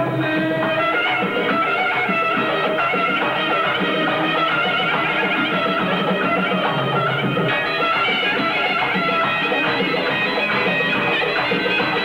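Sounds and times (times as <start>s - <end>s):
band accompaniment: 0.0s - 12.0s
reedy wind instrument melody: 0.0s - 12.0s.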